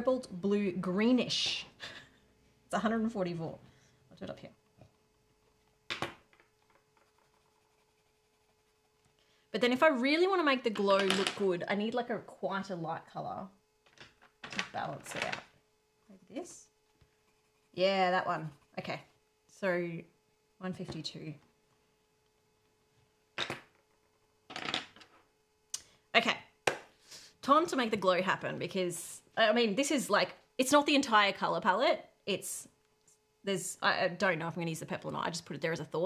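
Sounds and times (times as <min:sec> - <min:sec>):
faint steady hum: 0:00.0 - 0:36.0
pencil scratching on paper: 0:06.9 - 0:09.2, 0:17.0 - 0:19.0.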